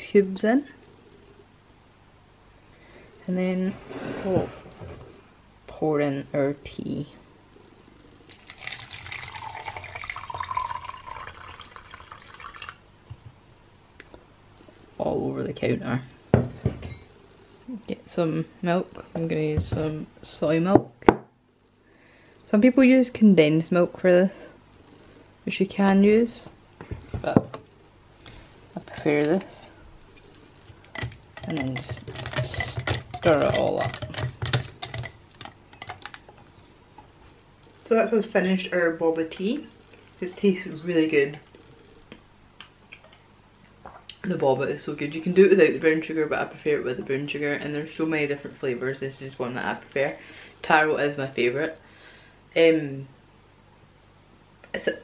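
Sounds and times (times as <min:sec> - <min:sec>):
tea pouring into cup with ice: 0:08.3 - 0:12.8.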